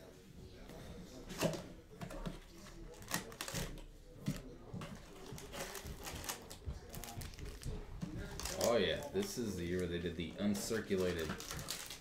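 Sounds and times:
foil packs rustling: 8.4 - 12.0.

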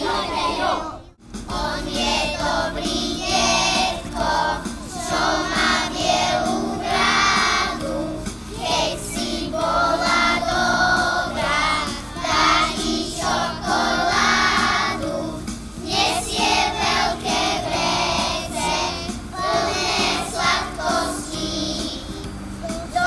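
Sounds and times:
children singing together: 0.0 - 23.0.

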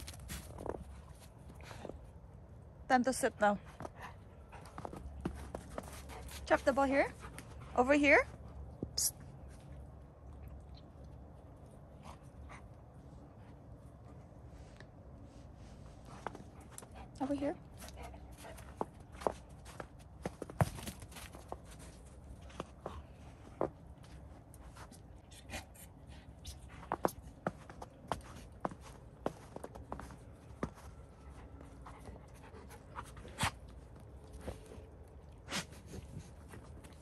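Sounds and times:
dog panting: 31.2 - 34.8.

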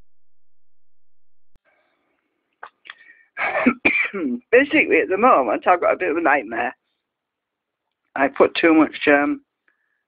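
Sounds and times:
man coughing: 3.4 - 4.3.

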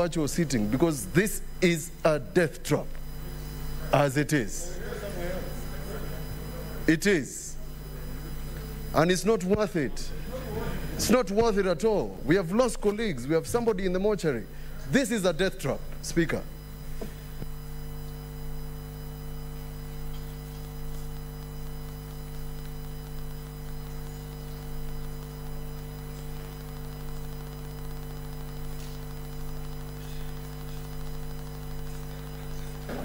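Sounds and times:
electrical mains hum: 0.0 - 33.0.

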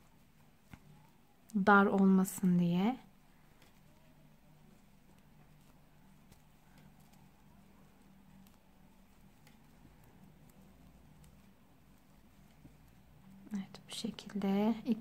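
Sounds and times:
low steady hum: 0.0 - 15.0
knitting needles clicking: 0.4 - 15.0.

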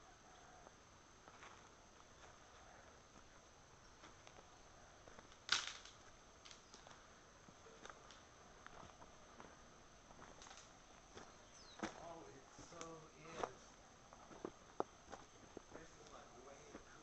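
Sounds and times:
footsteps on leaves and twigs: 1.2 - 2.5, 4.0 - 7.0, 7.6 - 17.0
person's voice: 11.9 - 13.7.

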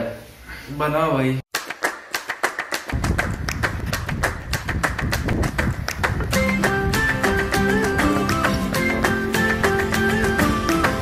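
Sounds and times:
quick percussive taps: 1.5 - 6.8.

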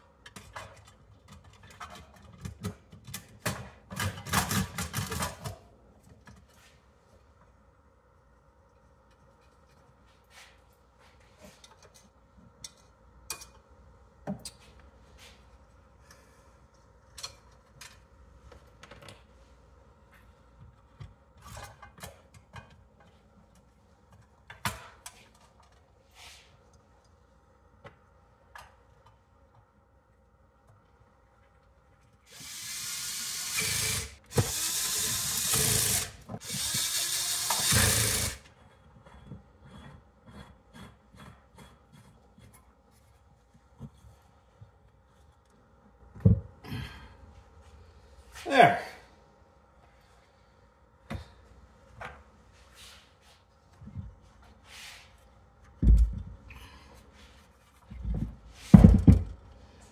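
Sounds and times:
cordless drill running: 32.3 - 38.4.

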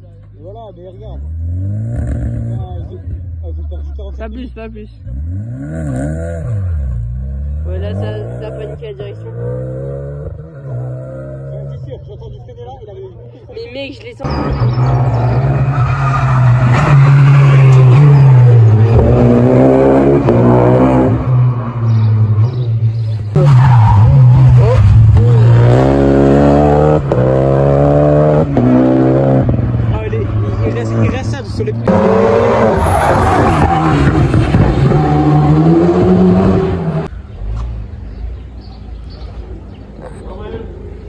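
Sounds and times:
rally car engines passing: 0.2 - 41.0.

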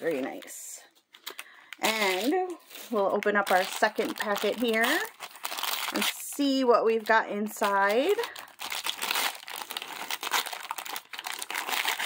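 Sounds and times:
plastic wrapper crinkling: 0.0 - 12.0.

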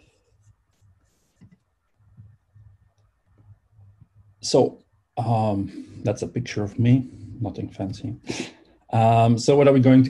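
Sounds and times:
soft rustle: 0.0 - 4.4.

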